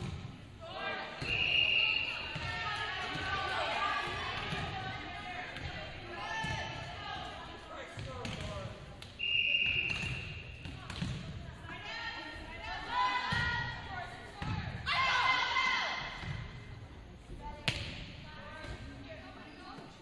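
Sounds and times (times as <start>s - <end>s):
referee's whistle blast: 1.2s - 2.2s, 9.2s - 10.6s.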